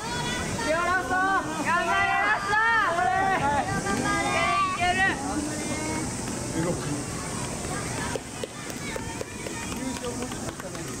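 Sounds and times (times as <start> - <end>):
indistinct crowd voices: 0.0 - 11.0
open-air ambience: 0.0 - 11.0.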